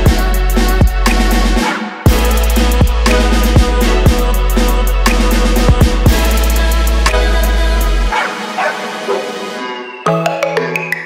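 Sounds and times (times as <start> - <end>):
bark-like sounds falling in pitch: 8.1 - 9.5.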